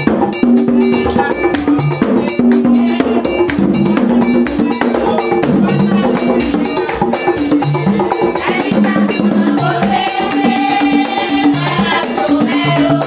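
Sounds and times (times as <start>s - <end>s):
hand drums playing: 0.0s - 13.0s.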